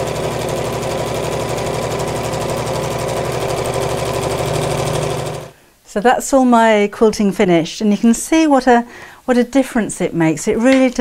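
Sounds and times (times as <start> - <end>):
sewing machine running: 0.0 - 5.5.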